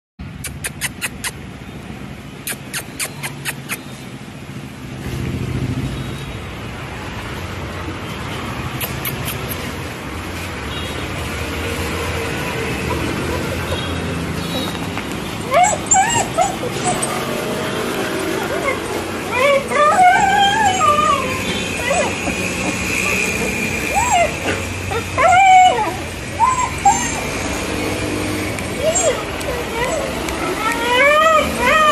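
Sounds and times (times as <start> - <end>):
dog whining: 0.4 - 1.4, 2.5 - 3.9, 12.3 - 27.9, 28.6 - 31.9
vehicle engine passing by: 1.4 - 31.9.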